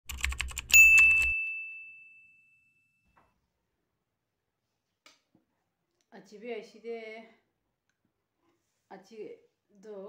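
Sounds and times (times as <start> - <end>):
typing-like clicks: 0.1 - 1.3
bright ding: 0.8 - 3.0.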